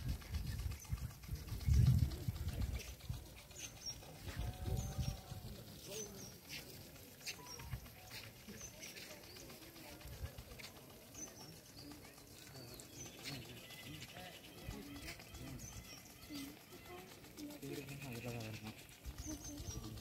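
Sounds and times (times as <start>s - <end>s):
faint distant voices: 0.0s - 20.0s.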